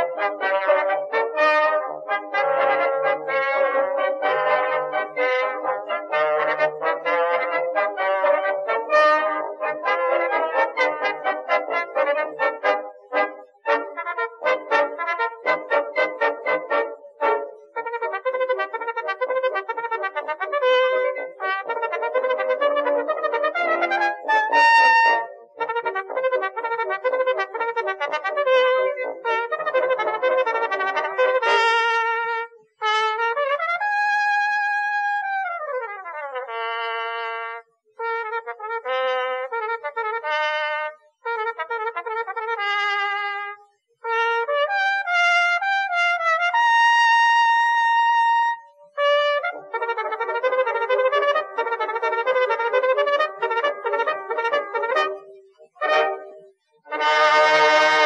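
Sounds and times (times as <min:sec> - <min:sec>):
trumpet-led brass music: 0:00.0 - 0:58.0.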